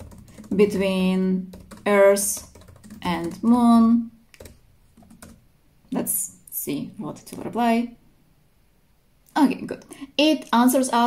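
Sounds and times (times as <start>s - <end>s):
computer keyboard typing: 0.0s - 3.6s, 4.4s - 5.4s.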